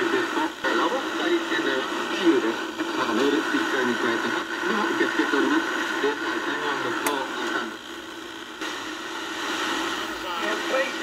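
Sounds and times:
faint radio voice: 0.0 - 7.8
radio static hiss: 0.0 - 11.0
steady radio tones: 0.0 - 11.0
sharp click: 7.0 - 7.2.

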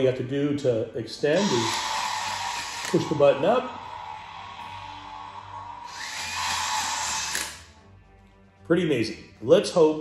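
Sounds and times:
toy lightsaber motor whirring: 1.2 - 7.7.

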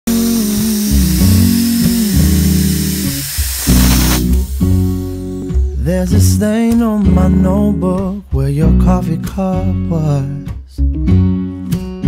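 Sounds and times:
person singing: 0.1 - 4.2, 5.1 - 10.8
steam wand hissing: 0.1 - 5.8
background music with guitar: 0.1 - 12.0.

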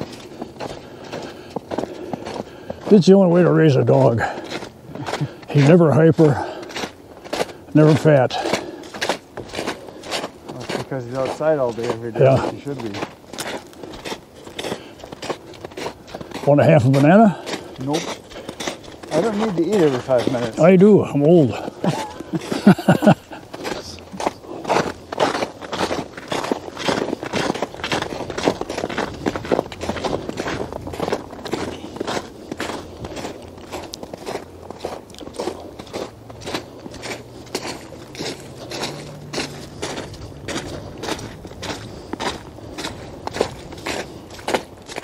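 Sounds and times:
footsteps crunching on snow: 0.0 - 45.0.

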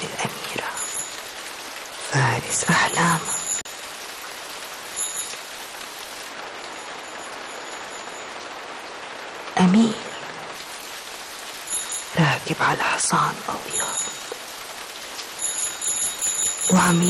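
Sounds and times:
steady rain falling: 0.0 - 17.0.

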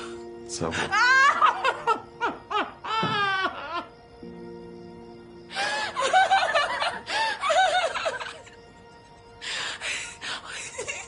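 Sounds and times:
soft music of held chords: 0.0 - 11.0
woman crying and laughing: 0.8 - 3.9, 5.6 - 8.6, 9.8 - 11.0.

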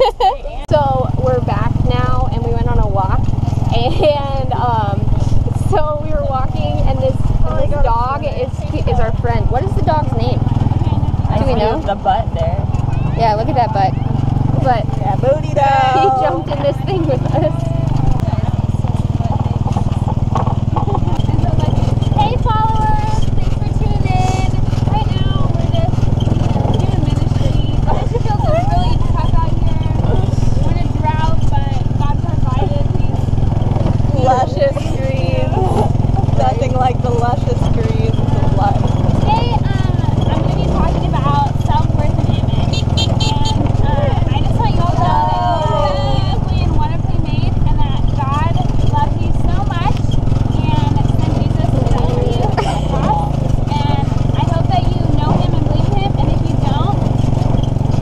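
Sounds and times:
people laughing: 0.0 - 0.7, 15.3 - 18.1, 20.7 - 21.6, 35.4 - 36.8, 51.9 - 53.5
indistinct chatter: 0.0 - 58.0
road rumble: 0.0 - 58.0
small engine droning: 0.0 - 58.0.

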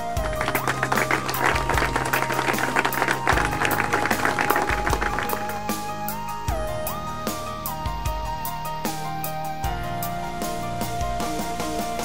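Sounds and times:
small group applauding: 0.0 - 6.0
background music: 0.0 - 12.0.

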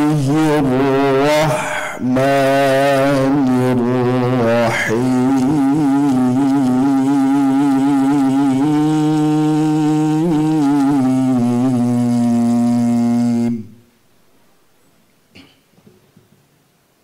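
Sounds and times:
man reciting melodically: 0.0 - 13.8.

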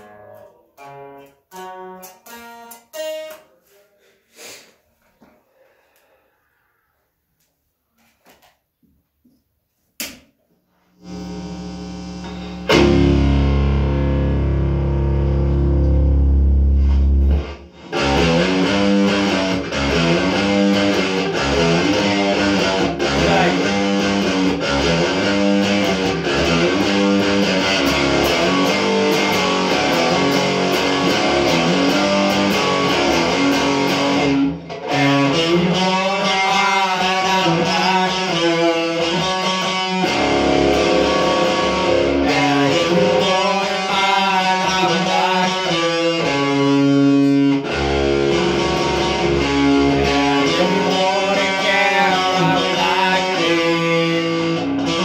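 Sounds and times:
electric guitar through amplifier: 0.0 - 3.8, 10.9 - 55.0
low amp hum: 10.9 - 20.7.

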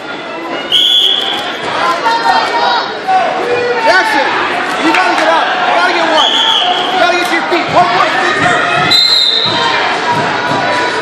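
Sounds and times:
referee's whistle blast: 0.7 - 1.5, 8.9 - 9.6
people talking: 1.2 - 11.0.

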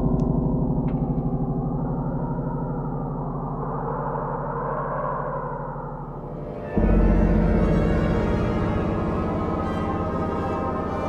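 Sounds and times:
pulsing low synthesizer drone: 0.0 - 11.0.

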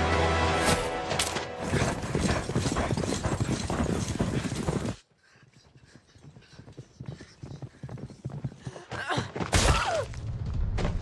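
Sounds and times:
horse hoofbeats on soft ground: 1.6 - 9.5.

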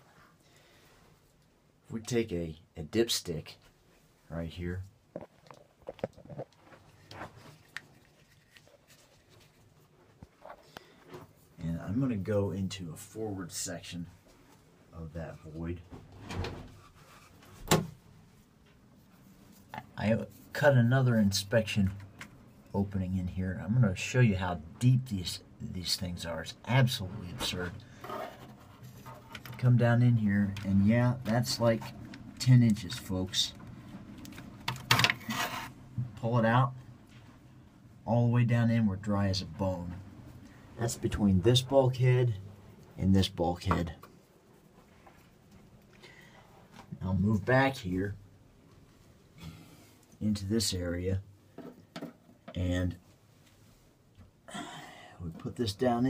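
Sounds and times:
light handling scrapes and clicks: 27.2 - 35.8.

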